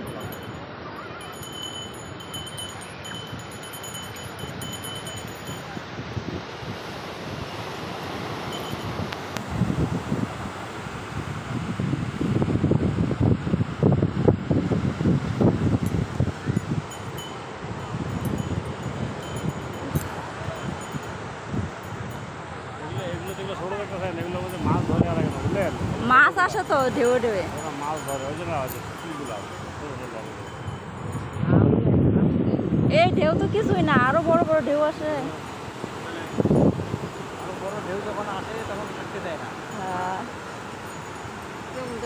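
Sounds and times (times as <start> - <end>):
surf breaking on beach: 0.0 - 42.0
wind rumbling on microphone: 0.0 - 42.0
people's voices: 19.7 - 21.2, 22.5 - 31.7, 32.8 - 36.6, 37.2 - 40.4, 41.7 - 42.0.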